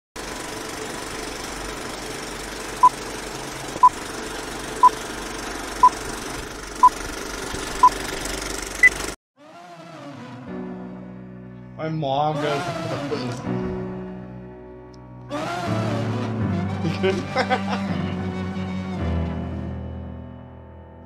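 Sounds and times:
film projector whirring and crackling: 0.2 - 9.2.

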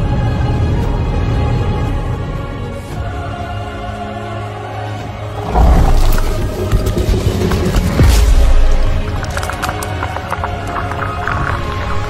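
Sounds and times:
music: 0.0 - 12.0
deep rumble with crackles: 5.3 - 12.0.

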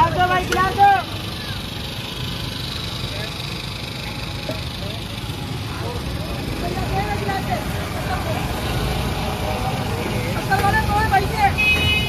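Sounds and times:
low mechanical street rumble: 0.0 - 12.0.

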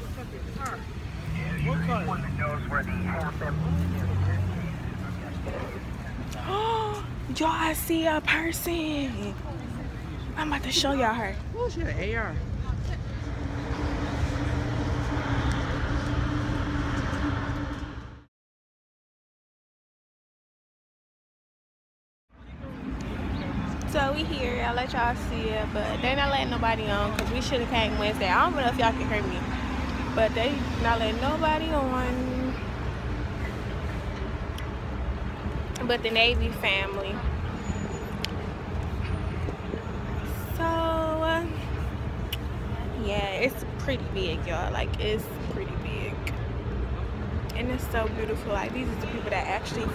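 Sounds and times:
outdoor rumble and noise: 0.0 - 18.3, 22.3 - 49.9.

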